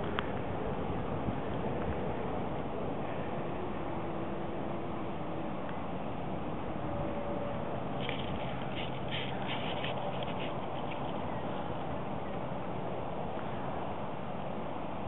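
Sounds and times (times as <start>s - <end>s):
wind on microphone: 0.0s - 12.8s.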